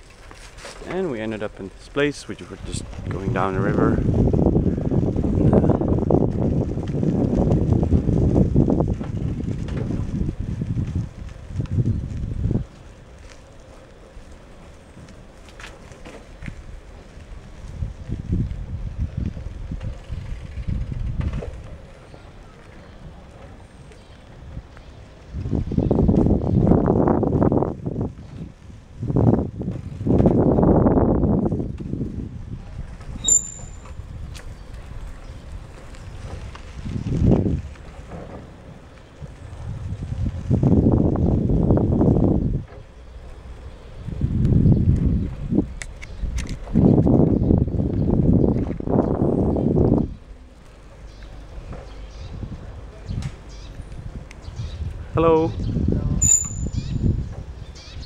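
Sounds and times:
wind buffeting microphone: 0.0 - 58.0
brief high chirp: 33.2 - 33.9, 56.2 - 57.0.

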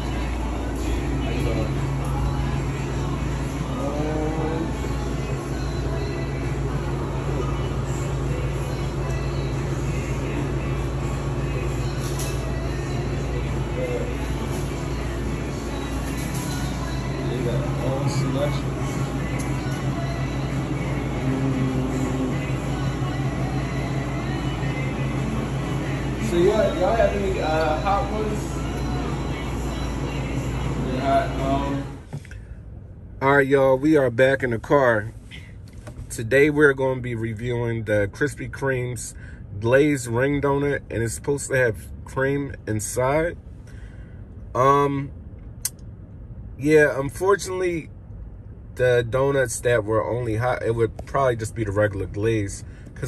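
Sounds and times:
faint background music: 0.0 - 43.6, 44.2 - 53.0
low machine hum: 0.0 - 53.0.

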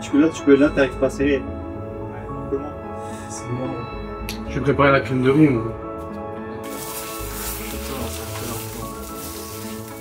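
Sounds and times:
background music: 0.0 - 10.0
food sizzling in a frying pan: 6.6 - 10.0.

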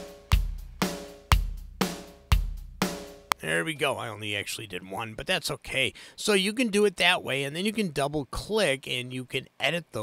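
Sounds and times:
programmed drum beat: 0.0 - 3.5.

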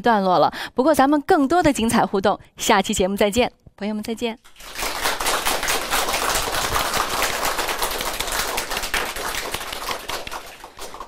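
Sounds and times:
audience applauding: 4.5 - 11.0.

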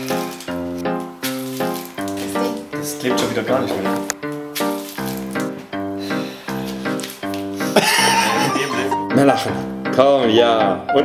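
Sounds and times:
background music: 0.0 - 11.0
man laughing high: 7.6 - 9.0.

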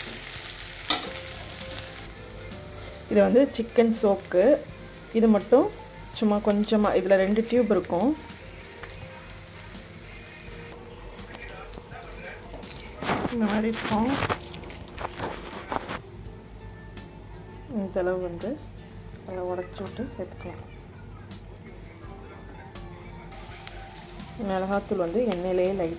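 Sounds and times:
oil sizzling under frying onions: 0.0 - 10.8, 23.3 - 25.9
background music: 0.0 - 25.9.

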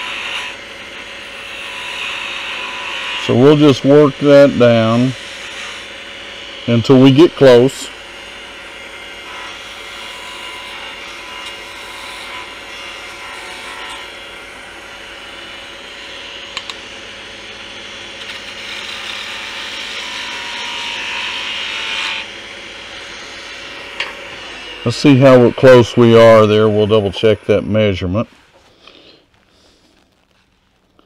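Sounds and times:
turning tool scraping wood: 0.0 - 7.9, 18.2 - 31.0
wood lathe humming: 0.0 - 30.1.

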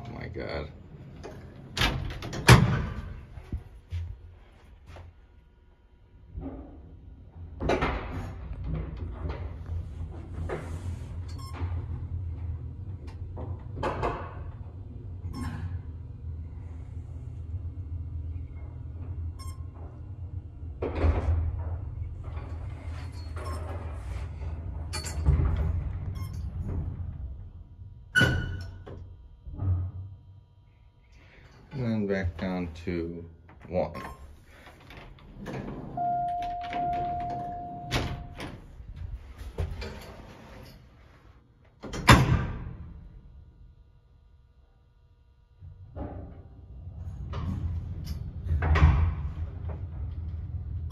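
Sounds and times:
elevator car humming: 8.4 - 29.6, 34.0 - 40.7
metal elevator gate rattling: 34.0 - 38.7.

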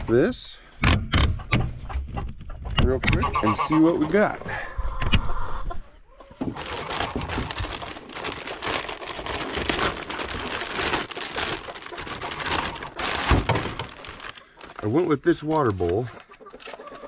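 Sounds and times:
clicks and thunks: 0.8 - 3.2
packaging crinkling and rustling: 6.4 - 16.9.

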